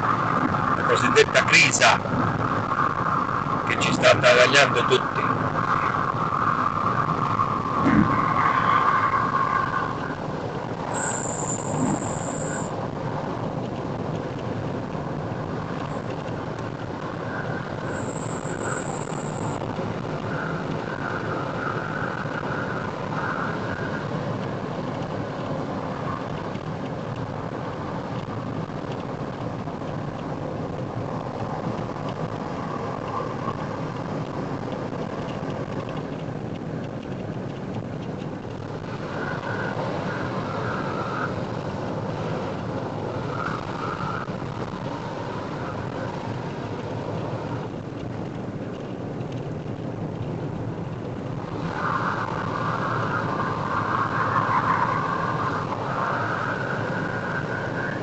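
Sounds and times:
car road and engine noise: 0.0s - 58.0s.

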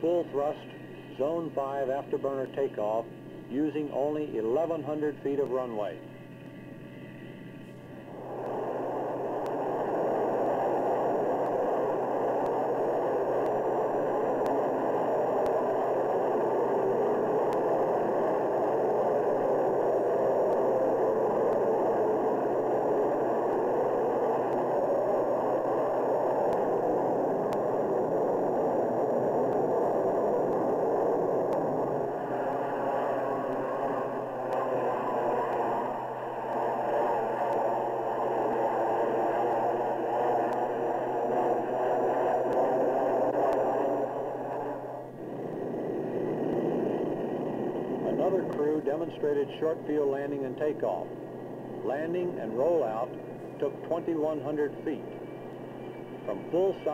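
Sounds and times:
jet engines roaring in afterburner: 0.0s - 56.9s.

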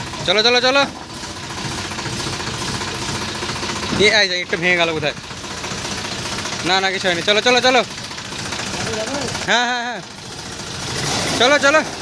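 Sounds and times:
tractor diesel engine running: 0.0s - 12.0s.

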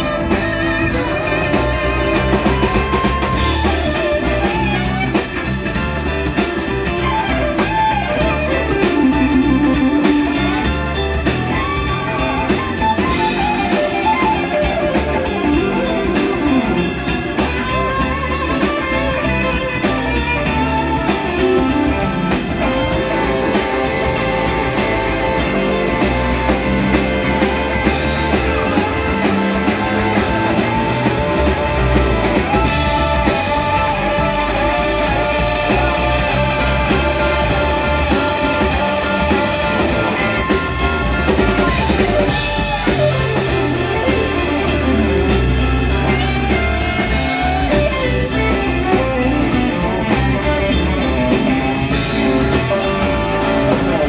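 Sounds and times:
bass guitar: 0.0s - 54.0s
drum kit: 0.0s - 54.0s
electric guitar lead: 0.0s - 54.0s.

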